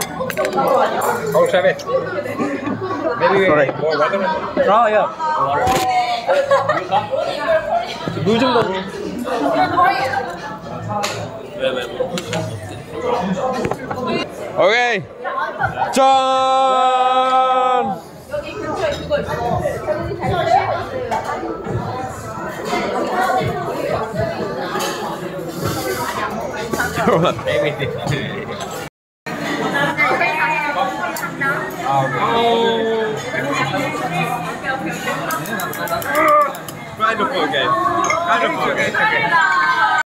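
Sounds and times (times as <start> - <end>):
people chattering: 0.0 - 40.0.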